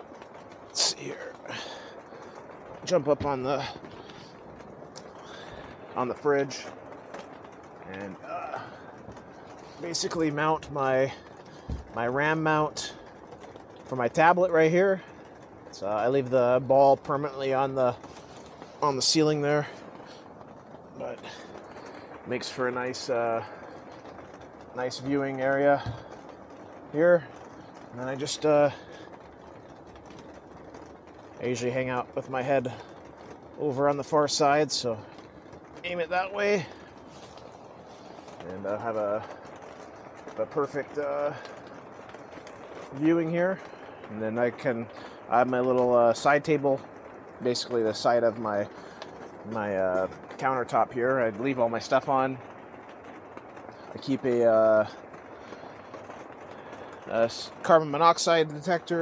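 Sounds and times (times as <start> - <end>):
steady background hiss: 0.0 - 59.0.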